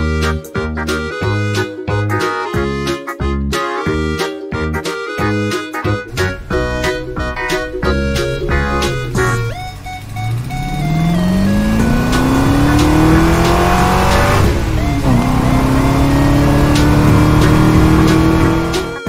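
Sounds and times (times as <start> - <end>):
music: 0.0 - 19.0
car engine accelerating: 6.0 - 19.0.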